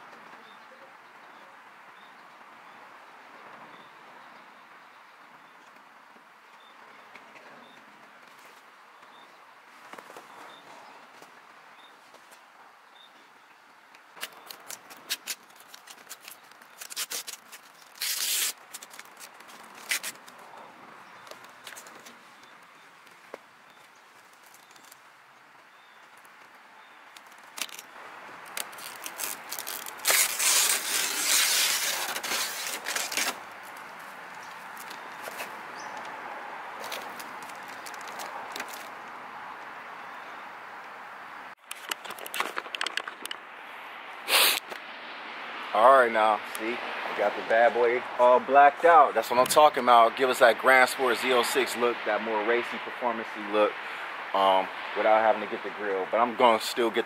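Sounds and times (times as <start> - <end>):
vinyl film crackling rustle: 14.0 - 36.2, 36.8 - 39.6
razor blade cutting vinyl film: 14.2 - 20.2, 28.5 - 33.4.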